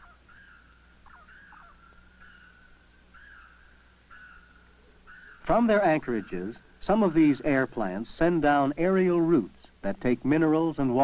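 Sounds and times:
animal call notes: 0.0 - 7.9
steady low hum: 0.0 - 11.0.

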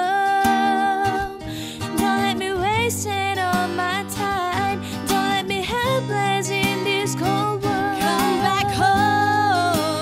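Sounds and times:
guitar-led pop ballad: 0.0 - 10.0
woman singing: 0.0 - 10.0.

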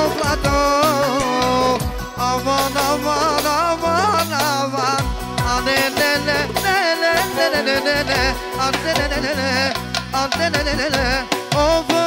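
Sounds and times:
bass line: 0.0 - 12.0
man singing ornamented melody: 0.0 - 12.0
steady drumbeat: 0.0 - 12.0.

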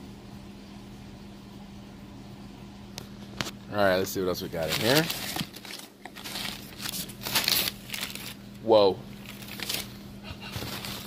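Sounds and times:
packing paper rustling: 4.3 - 11.0.

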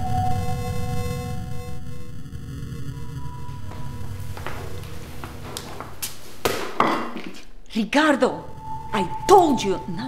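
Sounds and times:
low musical drone: 0.0 - 5.6, 8.4 - 10.0
rubber ball bouncing on floor: 6.4 - 7.4.

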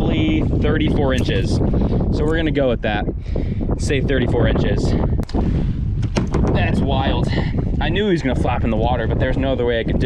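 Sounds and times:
wind buffeting microphone: 0.0 - 10.0
sharp knock: 6.0 - 6.6.

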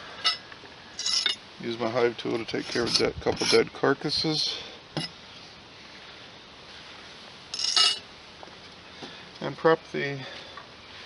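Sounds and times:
faint steady hiss: 0.0 - 11.0
metallic clink: 1.0 - 1.4, 7.5 - 8.0.

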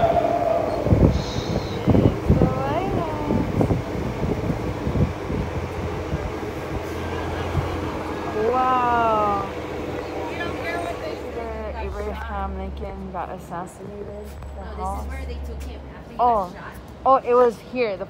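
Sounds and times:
bus engine drone: 0.0 - 18.0
road noise: 0.0 - 18.0.

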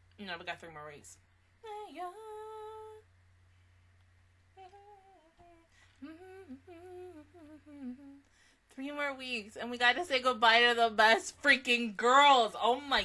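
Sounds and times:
woman humming: 1.6 - 3.0, 4.6 - 8.2.

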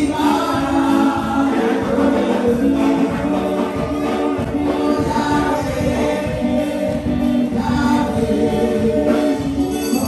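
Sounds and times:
congregation singing a gospel song: 0.0 - 10.0.

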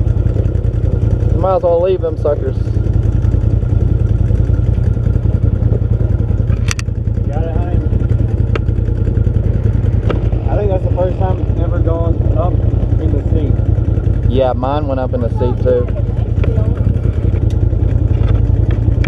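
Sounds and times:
utility vehicle engine idling: 0.0 - 19.0.

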